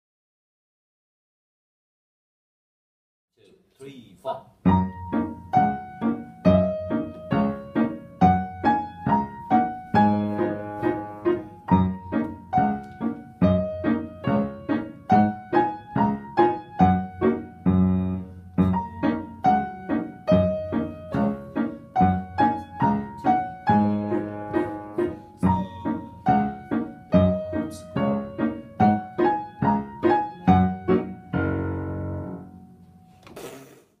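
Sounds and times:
piano duet: 4.2 - 33.3.

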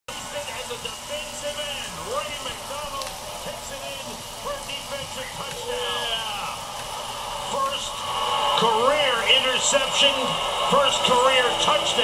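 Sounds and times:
stadium crowd noise: 0.1 - 12.0
several voices talking: 0.2 - 12.0.

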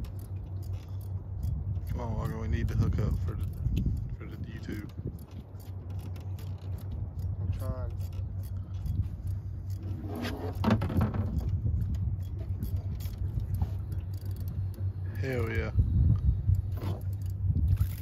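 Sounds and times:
fishing reel clicking: 0.0 - 9.9, 11.4 - 15.7, 16.4 - 18.0
low rumble: 6.3 - 18.0.

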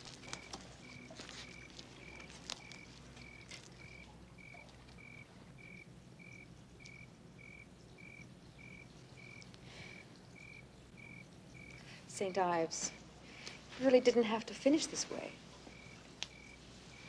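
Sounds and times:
cricket chirping: 0.0 - 13.5, 15.5 - 17.0
low background hum: 0.0 - 17.0.

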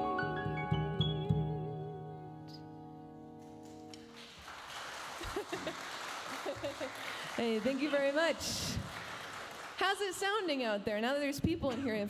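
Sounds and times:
piano and bass chord: 0.0 - 3.4
audience applause: 4.0 - 10.5.

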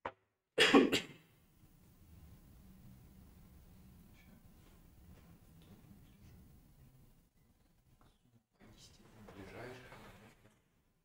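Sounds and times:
person coughing: 0.6 - 1.2.

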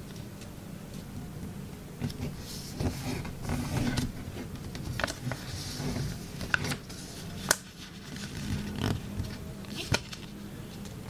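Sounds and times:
paper creasing crackle: 2.0 - 10.9
paper rustling: 2.1 - 10.9.

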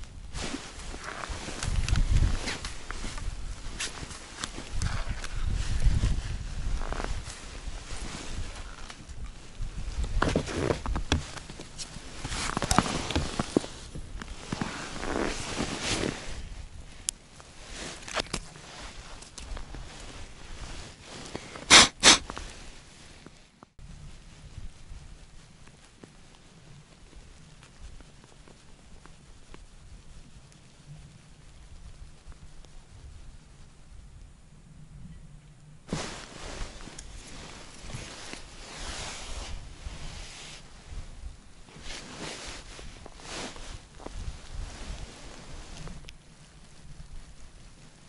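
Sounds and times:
clothing rustle: 0.3 - 23.7, 35.9 - 48.0
scuffs on snowy ice: 9.7 - 16.5, 35.9 - 40.7, 41.7 - 46.0.

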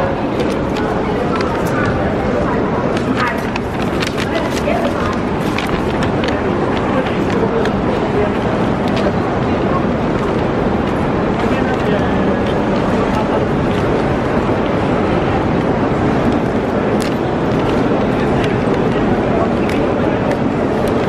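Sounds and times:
indistinct voices: 0.0 - 21.0
traffic-like noise: 0.0 - 21.0.

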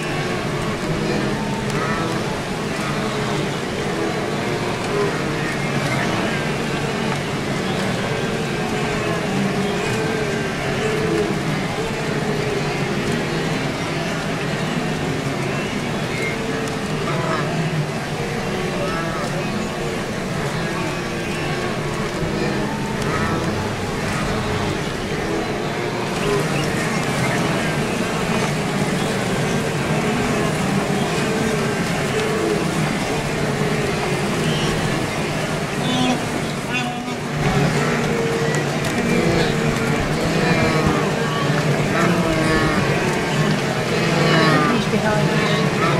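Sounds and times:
splashing river water: 0.0 - 45.9
wildebeest herd grunting: 0.0 - 45.9.

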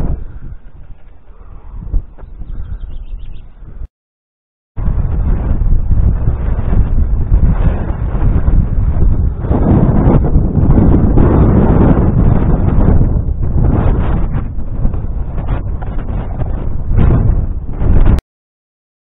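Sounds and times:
wind buffeting microphone: 0.0 - 3.9, 4.8 - 18.2.

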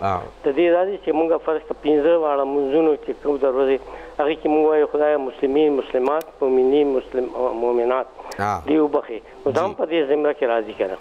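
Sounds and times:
man talking over telephone: 0.0 - 3.6, 9.5 - 11.0.

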